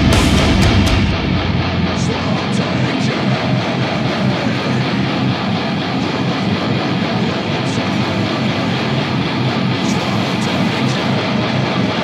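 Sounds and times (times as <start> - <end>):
electric guitar heavy metal riff: 0.0 - 12.0.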